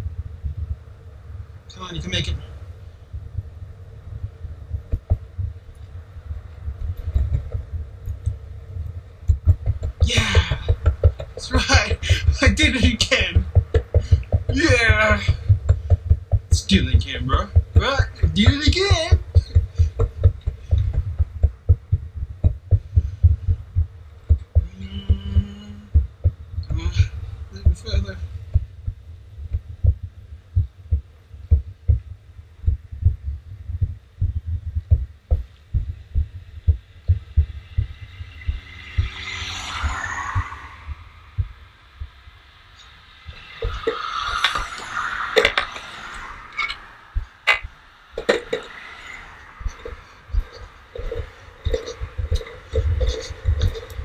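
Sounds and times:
steady held tone: 0:07.3 - 0:39.1
longboard rolling on concrete: 0:09.2 - 0:23.1.

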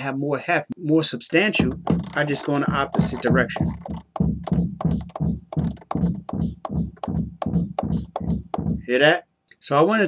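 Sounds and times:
drum hits dropping in pitch: 0:01.4 - 0:09.0.

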